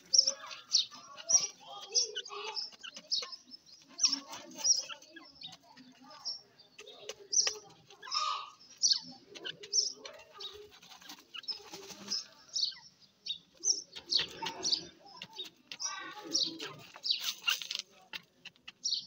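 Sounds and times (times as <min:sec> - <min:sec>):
bird chirps and calls: 0:00.0 - 0:19.0.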